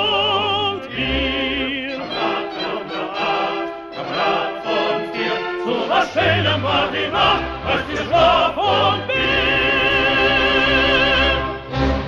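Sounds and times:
orchestra playing accented chords: 0:00.2 - 0:12.0.

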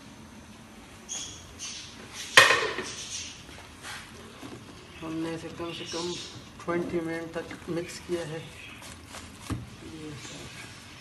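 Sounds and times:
metal ladle knocking on pot: 0:02.4 - 0:02.9
thick rice being stirred: 0:03.4 - 0:10.9.

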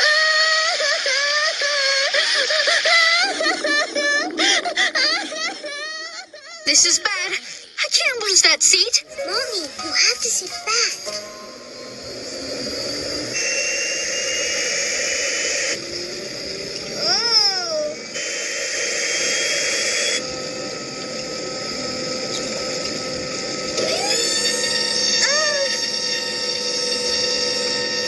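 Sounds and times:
jet engine whine: 0:00.0 - 0:28.0.

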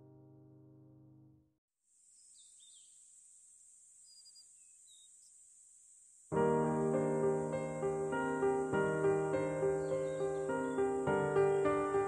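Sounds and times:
faint high hiss: 0:01.9 - 0:12.0
background music chord: 0:06.4 - 0:12.0.

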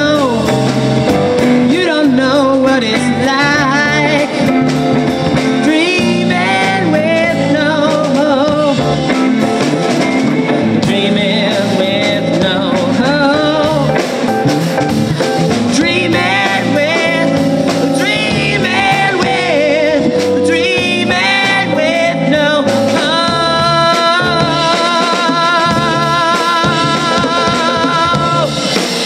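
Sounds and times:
live rock band playing: 0:00.0 - 0:29.0
person singing lead vocal: 0:00.0 - 0:29.0.

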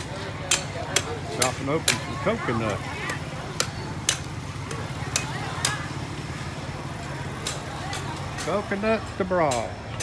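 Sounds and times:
knife chopping coconuts: 0:00.0 - 0:05.9.

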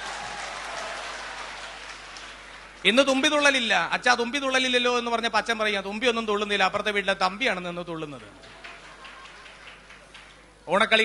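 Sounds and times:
large audience applauding: 0:00.0 - 0:02.9, 0:08.2 - 0:10.6.

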